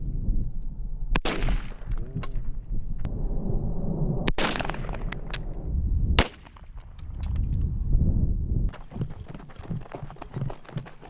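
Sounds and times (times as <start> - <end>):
rifle shots: 1.2 - 2.0, 4.3 - 5.4, 6.2 - 6.6.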